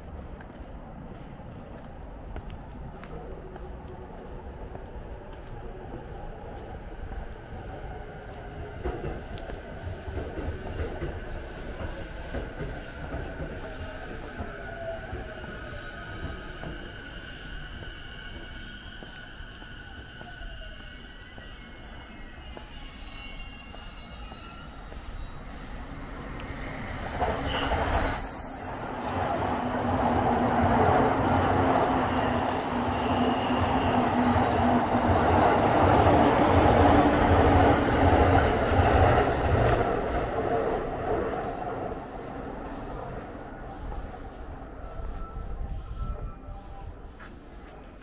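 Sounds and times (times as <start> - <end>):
electric train passing: 24.2 - 47.9.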